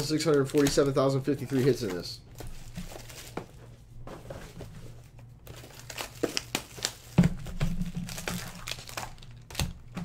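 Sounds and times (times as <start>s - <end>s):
plastic shrink-wrap crinkling and tearing: 0.0s - 3.4s, 5.4s - 9.9s.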